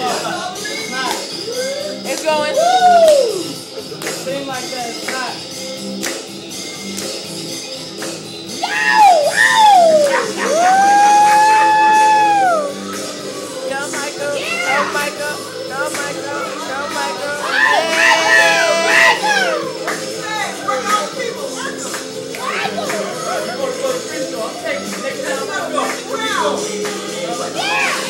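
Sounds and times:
music playing in room: 0:00.0 - 0:28.0.

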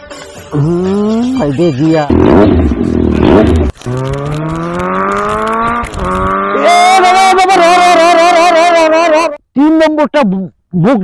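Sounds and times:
car engine revving: 0:02.1 - 0:08.3.

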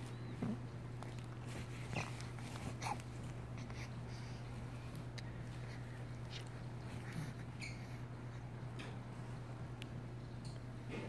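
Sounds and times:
steady low hum: 0:00.0 - 0:11.0
baby vocalizing softly: 0:01.7 - 0:08.5.

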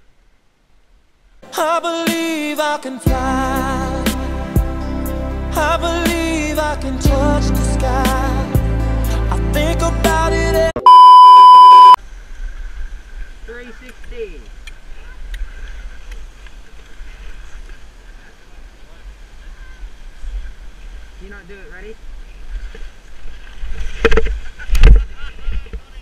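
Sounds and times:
test tone beep: 0:10.8 - 0:12.0.

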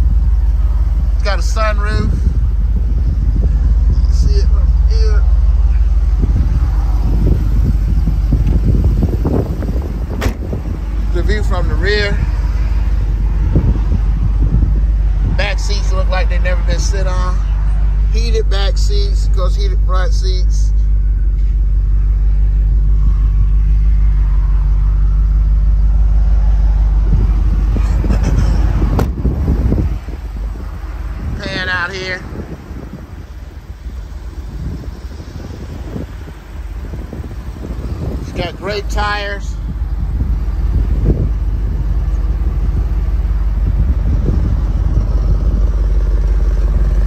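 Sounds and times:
car engine idling: 0:00.0 - 0:47.0
wind buffeting microphone: 0:00.0 - 0:47.0.

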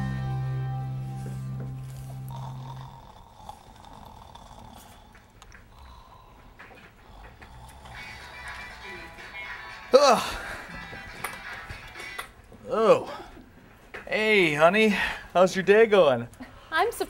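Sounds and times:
music with held notes: 0:00.0 - 0:02.3
man snoring: 0:01.9 - 0:06.4, 0:07.0 - 0:09.0.

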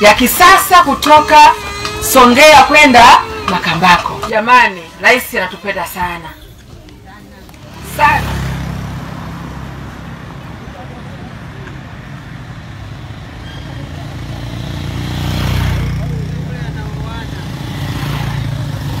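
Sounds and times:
motorcycle engines passing: 0:00.0 - 0:19.0.

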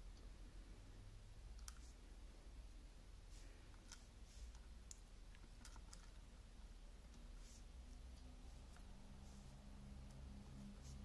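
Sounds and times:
plastic beads clicking: 0:03.7 - 0:06.2.

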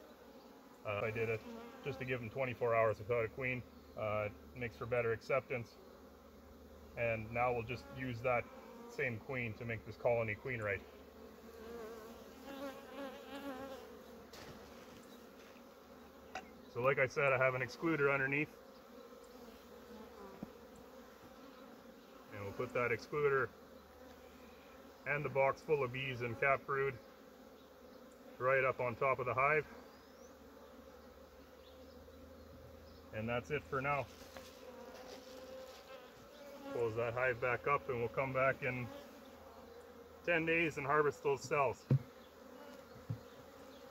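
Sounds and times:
bees buzzing: 0:00.0 - 0:43.9.

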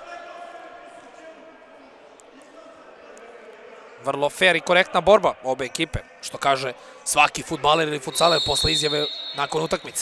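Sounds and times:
echoing sports hall ambience: 0:00.0 - 0:10.0.

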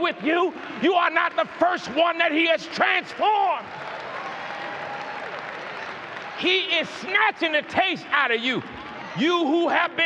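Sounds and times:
congregation applauding: 0:00.0 - 0:10.0.

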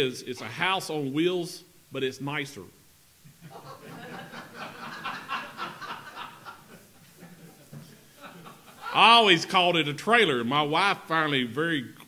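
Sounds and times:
audience laughter: 0:03.4 - 0:09.2.

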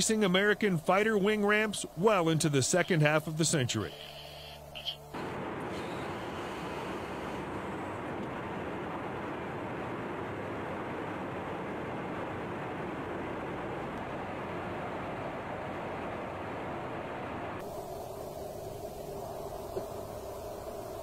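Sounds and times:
jet aircraft roar: 0:00.0 - 0:21.0.

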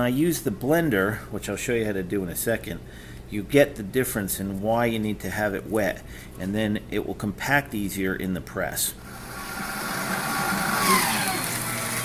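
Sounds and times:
paper shredder motor humming: 0:09.0 - 0:12.0
whine sliding down: 0:09.0 - 0:12.0.

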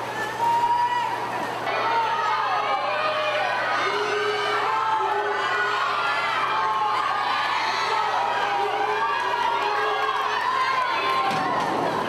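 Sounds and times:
spectators cheering and shouting: 0:00.0 - 0:12.0.

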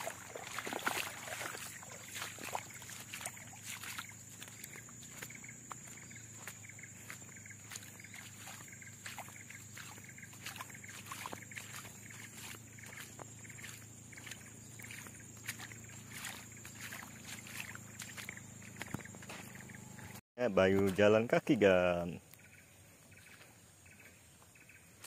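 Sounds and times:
footsteps in wet mud: 0:00.0 - 0:21.3.

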